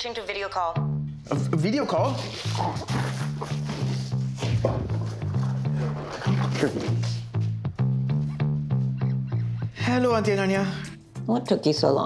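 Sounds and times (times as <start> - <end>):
playful comedic music with bass: 0.8 - 12.0.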